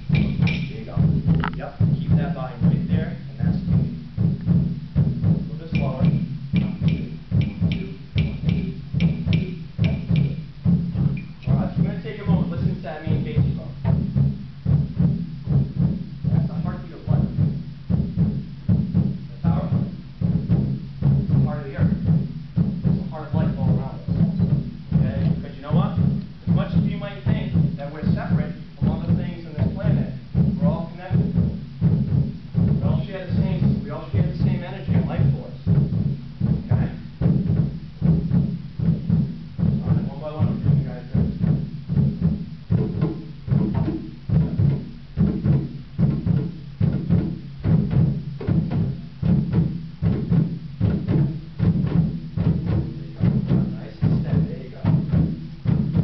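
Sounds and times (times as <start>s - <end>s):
hand drums thumping: 0.0s - 56.0s.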